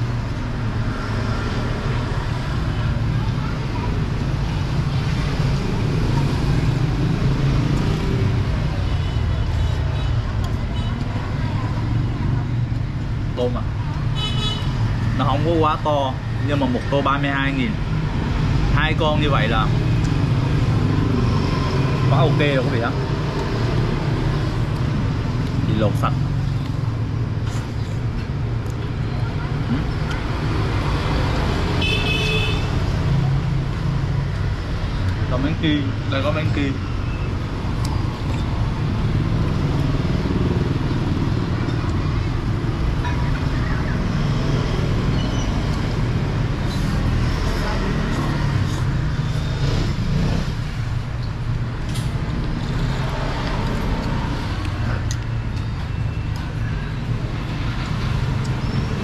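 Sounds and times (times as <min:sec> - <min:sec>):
road traffic rumbling: 0:00.0 - 0:59.0
car horn beep: 0:31.8 - 0:32.8.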